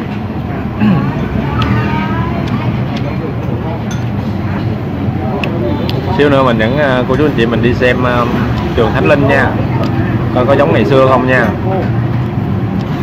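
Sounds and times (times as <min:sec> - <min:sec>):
street traffic rumble: 0:00.0 - 0:13.0.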